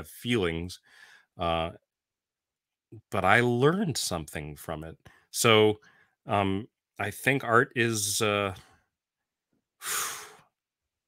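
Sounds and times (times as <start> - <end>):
man breathing: 0.8 - 1.4, 5.0 - 6.2, 9.8 - 10.6.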